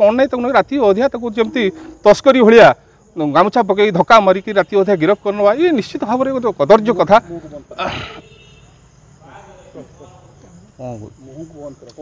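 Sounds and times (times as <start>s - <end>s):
insects droning: 0.0s - 12.0s.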